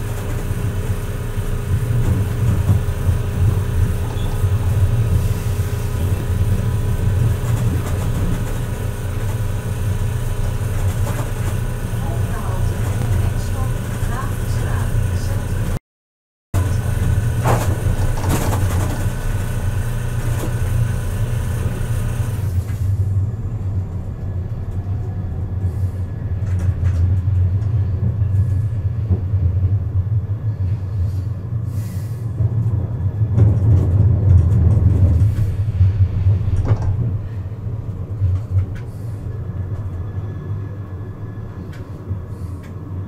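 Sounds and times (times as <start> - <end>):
tram running rumble: 0.0 - 15.8, 16.6 - 43.0.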